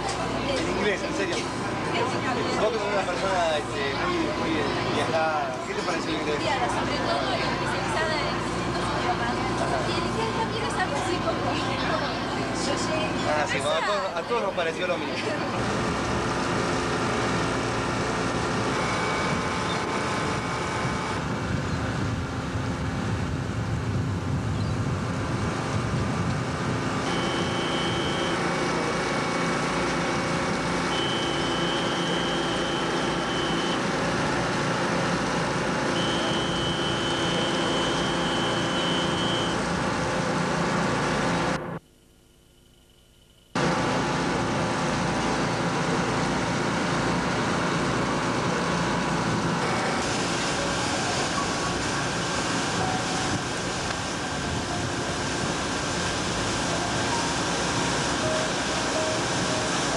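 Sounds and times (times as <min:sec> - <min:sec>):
boat engine drone: 0:00.0 - 0:41.8, 0:43.6 - 0:59.9
faint high whine: 0:26.8 - 0:34.0, 0:35.8 - 0:39.8.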